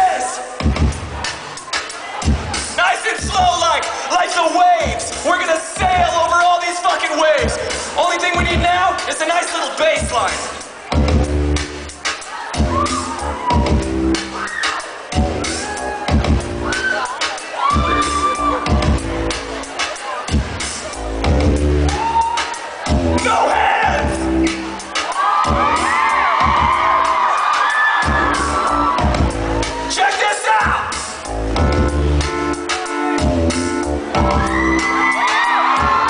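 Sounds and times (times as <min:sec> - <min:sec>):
crowd whooping and screaming: 0:00.0 - 0:05.7, 0:09.1 - 0:31.8, 0:32.8 - 0:36.0
live band music: 0:07.4 - 0:36.0
stop-start bass line: 0:10.1 - 0:12.0, 0:12.6 - 0:14.4, 0:15.2 - 0:16.8, 0:17.8 - 0:22.1, 0:22.9 - 0:24.9, 0:28.1 - 0:30.0, 0:30.7 - 0:34.9.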